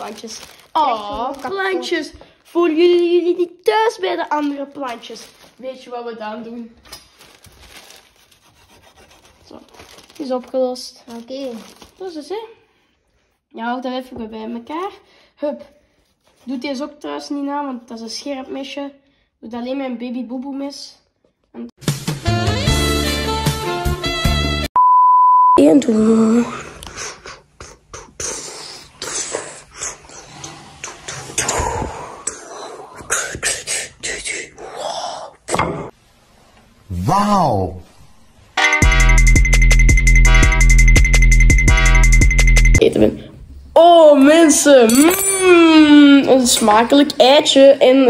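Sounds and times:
person beatboxing: 0:26.8 - 0:35.9.

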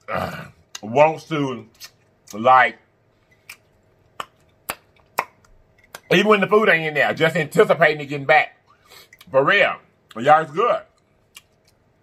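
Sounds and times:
wet lip-smacking clicks: 0:03.4 - 0:06.1, 0:11.0 - 0:11.8.

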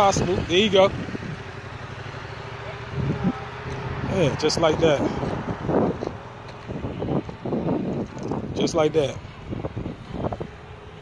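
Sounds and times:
motorcycle engine at low revs: 0:00.0 - 0:11.0
wind on microphone: 0:02.8 - 0:11.0.

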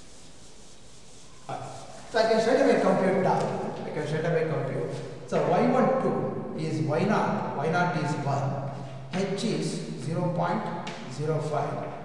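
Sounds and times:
duster rubbing a chalkboard: 0:00.0 - 0:03.7.

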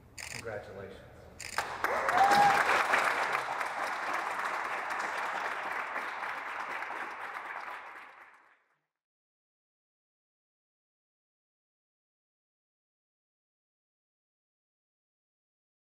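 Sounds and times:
group of people applauding: 0:01.5 - 0:08.8.

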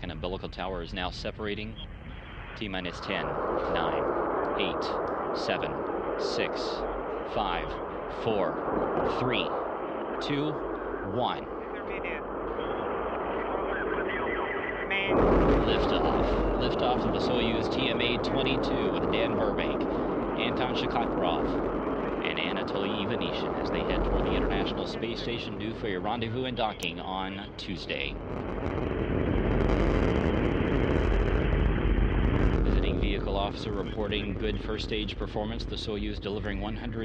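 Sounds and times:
rocket engines roaring: 0:00.0 - 0:37.0
faint voices: 0:02.5 - 0:09.6, 0:10.2 - 0:28.2, 0:32.7 - 0:37.0.

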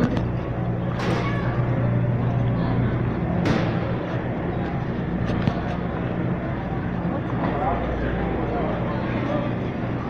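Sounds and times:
faint voices: 0:00.0 - 0:10.0
freezer humming: 0:00.0 - 0:10.0
store background noise: 0:00.0 - 0:10.0.

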